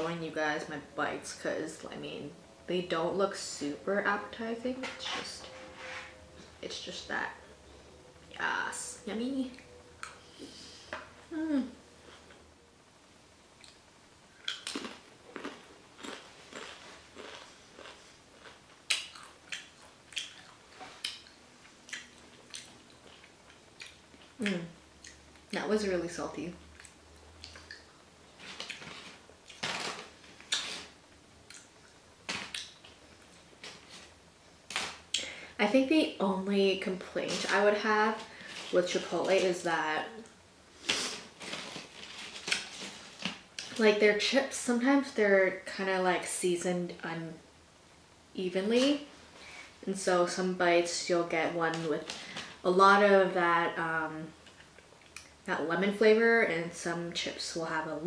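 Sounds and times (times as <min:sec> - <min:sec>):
chip crunching and chewing: 0:14.4 - 0:25.5, 0:26.8 - 0:30.9
chips crackling in a paper bag: 0:41.0 - 0:43.8.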